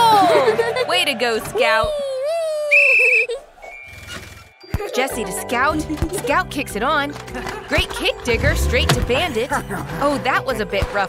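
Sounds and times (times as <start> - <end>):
background music: 0.0 - 2.3, 4.1 - 11.0.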